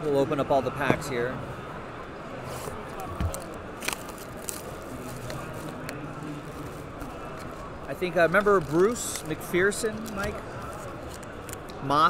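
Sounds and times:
murmur of crowd chatter: 0.0 - 12.0
foil packs crinkling: 3.0 - 11.6.

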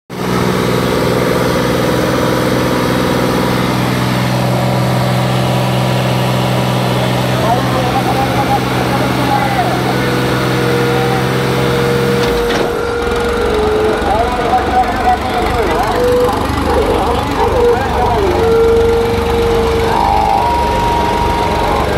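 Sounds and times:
tractor diesel engine: 0.1 - 21.9
crowd voices: 0.2 - 21.9.

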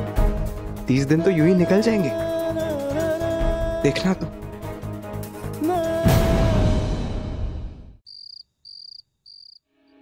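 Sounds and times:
soft music: 0.0 - 7.4
cricket chirps: 8.1 - 9.6.

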